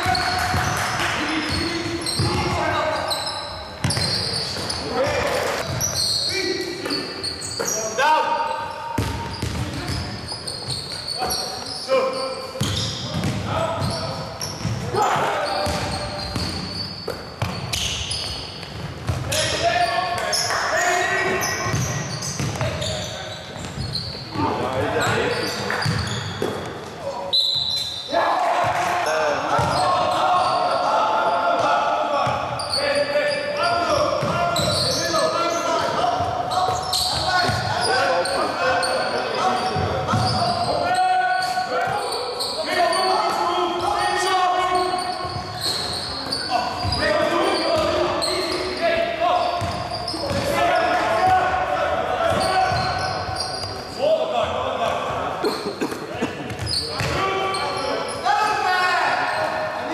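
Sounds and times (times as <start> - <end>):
basketball bouncing on court: 0.0 - 2.6, 3.8 - 4.8, 9.0 - 10.8, 12.6 - 14.9, 15.6 - 19.4, 21.6 - 22.9, 25.8 - 26.7, 29.5 - 29.9, 34.2 - 34.8, 39.7 - 40.6, 49.6 - 50.6, 56.5 - 57.2.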